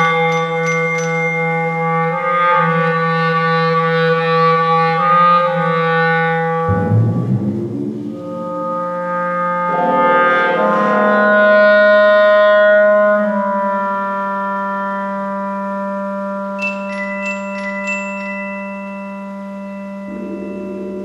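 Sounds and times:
clarinet sustained notes: 0.0 - 21.0
low struck note ringing: 6.6 - 9.0.

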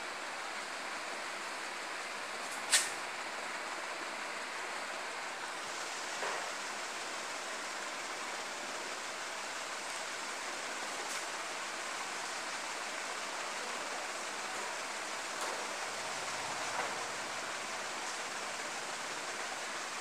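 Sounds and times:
steady background hiss: 0.0 - 20.0.

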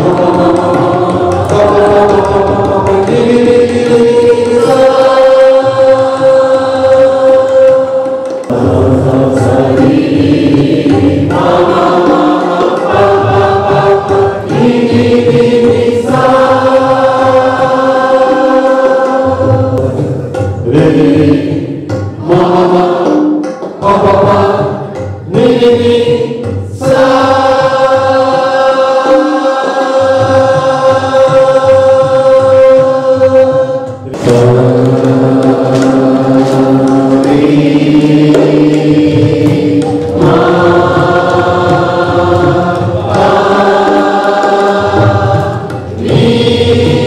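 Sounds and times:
group chanting long notes: 0.0 - 47.0.

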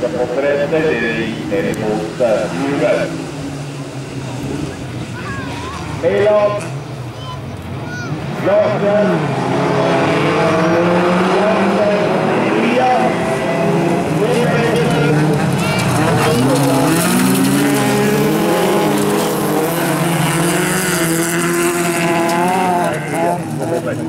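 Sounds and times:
racing car engines revving: 0.0 - 24.0.

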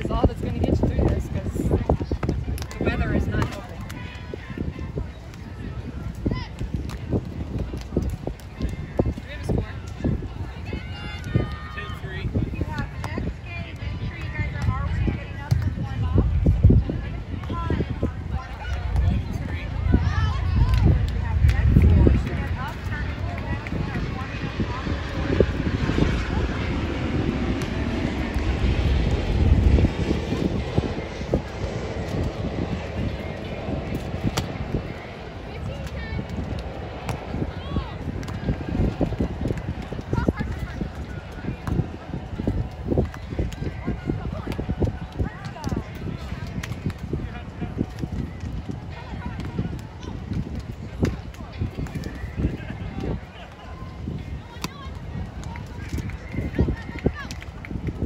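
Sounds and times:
distant people talking and calling: 0.0 - 58.0
faint voices: 0.0 - 58.0
wind buffeting microphone: 0.0 - 58.0
irregular low thumps: 13.8 - 25.8.

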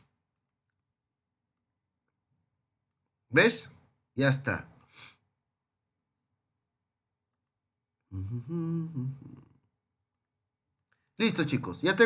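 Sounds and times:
person humming: 8.1 - 9.6.

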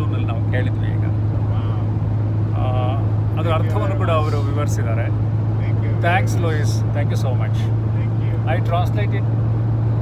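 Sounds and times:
road noise: 0.0 - 10.0
van engine drone: 0.0 - 10.0.

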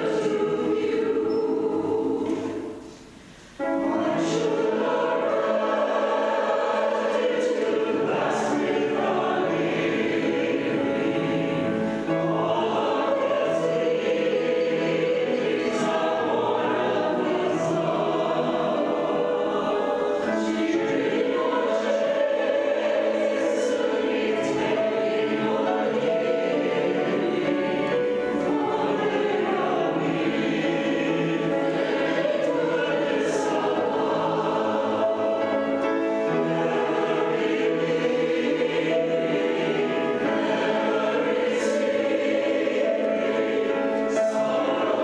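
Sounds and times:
mixed choir singing an anthem: 0.0 - 45.0.

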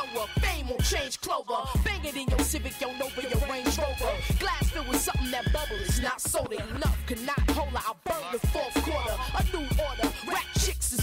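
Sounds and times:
deep bass line: 0.0 - 1.1, 1.8 - 11.0
rapping over a beat: 0.0 - 11.0.

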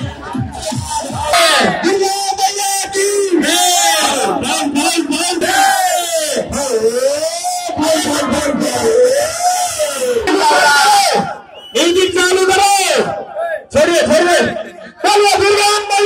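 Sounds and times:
crowd: 0.0 - 16.0
man calling through loudspeaker: 0.0 - 16.0.

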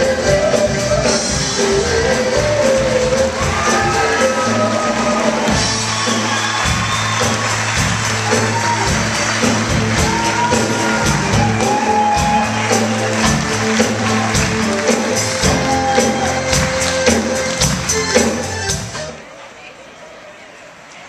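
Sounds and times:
person singing: 0.0 - 6.2
live rock band playing: 0.0 - 19.2
audience cheering: 3.3 - 18.4.

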